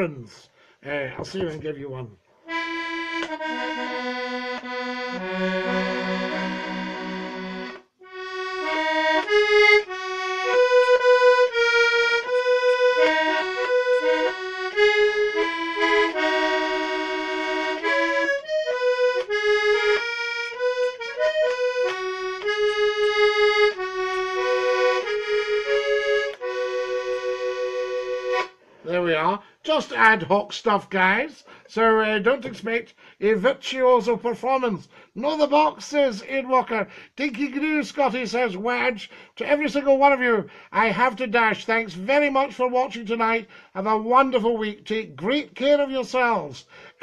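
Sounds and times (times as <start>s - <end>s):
accordion melody: 2.3s - 30.4s, 31.4s - 47.0s.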